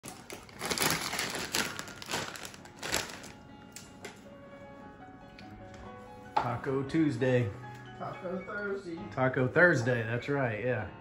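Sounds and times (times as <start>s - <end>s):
food packaging crackling: 0.0s - 4.2s.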